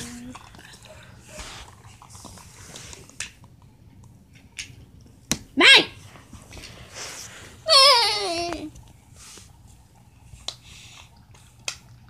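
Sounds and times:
high-pitched yelp: 0:07.7 - 0:08.7.

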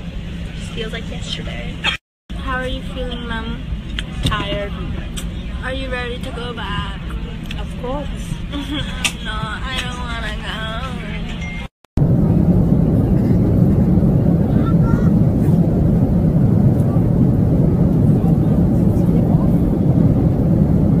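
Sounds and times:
jet engine roar in cabin: 0:00.0 - 0:21.0.

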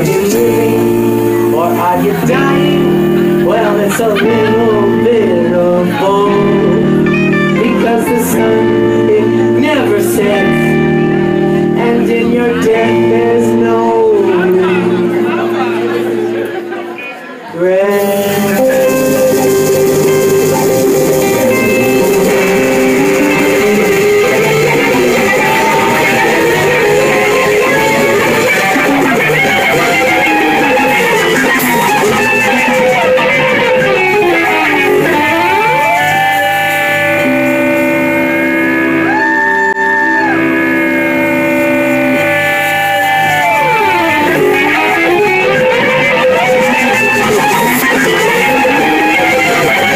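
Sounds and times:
electric guitar sustained notes: 0:00.0 - 0:49.9
live rock band playing: 0:00.0 - 0:49.9.

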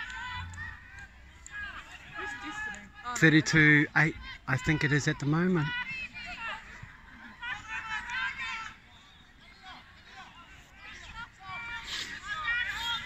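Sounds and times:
distant shouting voices: 0:00.0 - 0:13.0.

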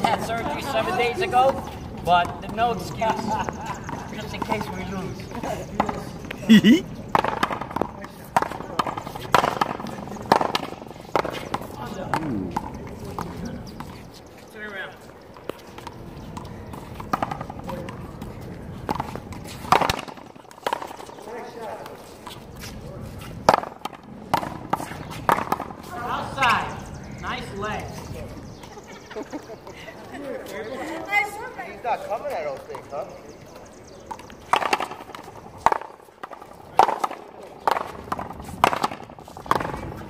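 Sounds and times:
players' voices: 0:00.0 - 0:07.0, 0:07.8 - 0:15.2.

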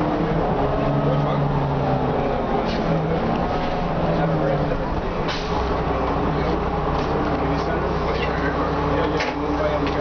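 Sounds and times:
bus diesel engine drone: 0:00.0 - 0:10.0
passengers chatting: 0:00.0 - 0:10.0.

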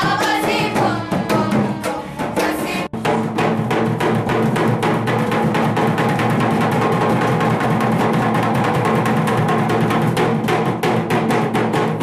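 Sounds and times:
barrel drums beaten with sticks: 0:00.0 - 0:12.0.

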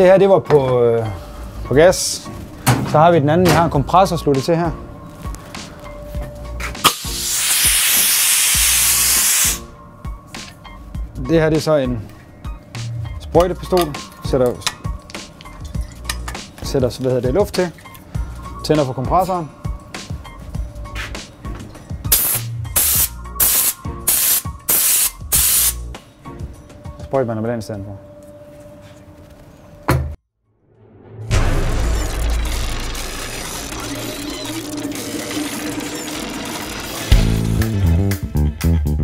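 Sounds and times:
compressed air hissing: 0:06.8 - 0:09.7, 0:22.1 - 0:25.9.

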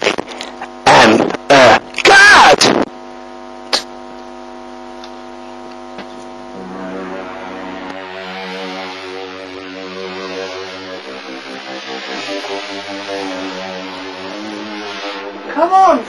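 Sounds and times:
droning hum: 0:00.0 - 0:16.0
lower droning tones: 0:04.4 - 0:16.0.

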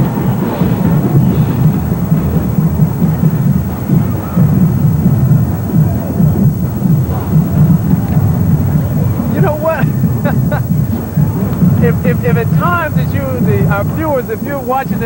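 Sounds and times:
marching band drums: 0:00.0 - 0:15.0.

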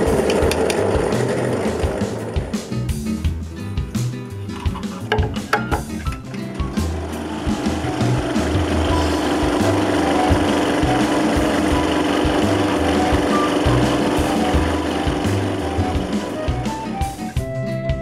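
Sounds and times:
background music with bass: 0:00.0 - 0:18.0.

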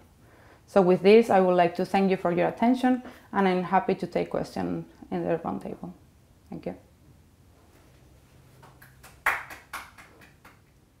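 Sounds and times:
hand claps: 0:08.6 - 0:10.8.

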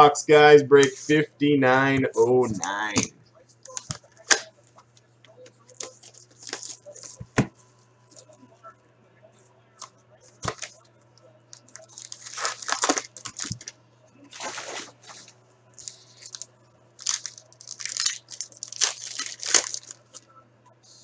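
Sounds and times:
wrapper crinkling and tearing: 0:05.8 - 0:07.2, 0:11.5 - 0:13.7, 0:14.3 - 0:20.2.

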